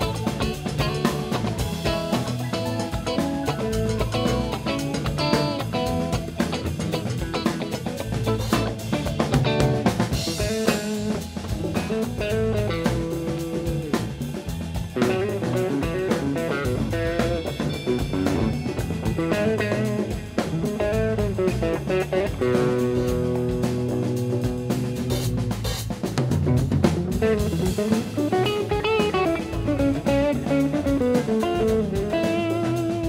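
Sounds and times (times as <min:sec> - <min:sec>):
rock band playing: 0:00.0 - 0:33.0.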